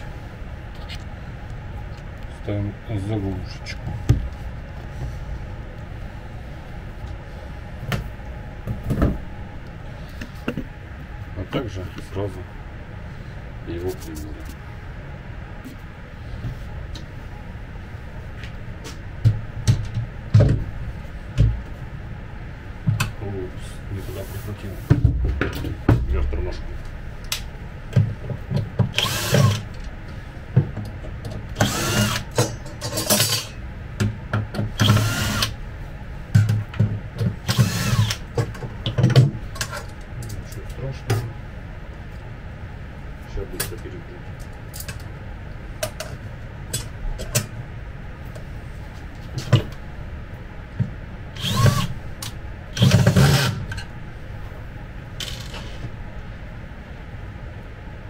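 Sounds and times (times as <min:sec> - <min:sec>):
cordless drill whirring: 0:29.0 - 0:29.6, 0:31.6 - 0:32.3, 0:34.8 - 0:35.5, 0:37.5 - 0:38.2, 0:51.4 - 0:51.9, 0:52.8 - 0:53.5.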